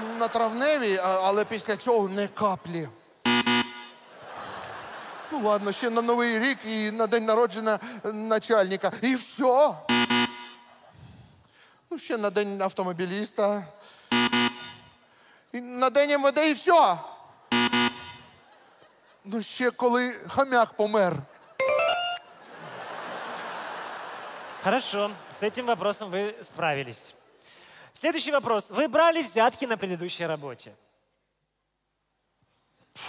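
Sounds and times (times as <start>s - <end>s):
harsh buzzer: 3.2s - 4.1s, 9.9s - 10.8s, 14.1s - 15.0s, 17.5s - 18.4s.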